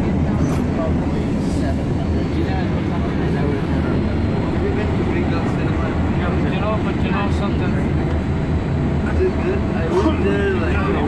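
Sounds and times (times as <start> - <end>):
passengers chattering: 0.0 - 11.0
train rumbling: 0.0 - 11.0.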